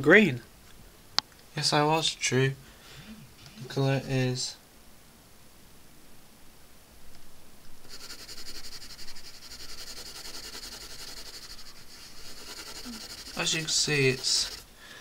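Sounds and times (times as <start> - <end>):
pencil scratching on paper: 7.9 - 14.7.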